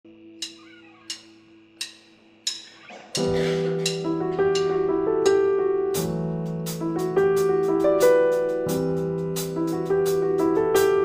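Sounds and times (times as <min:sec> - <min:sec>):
sharp percussion ticks: 0:00.4 - 0:10.2.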